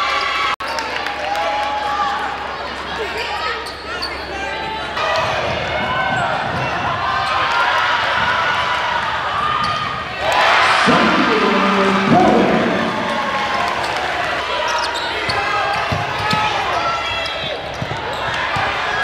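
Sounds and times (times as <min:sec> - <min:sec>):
voices shouting in gym: 0:10.2 - 0:14.1.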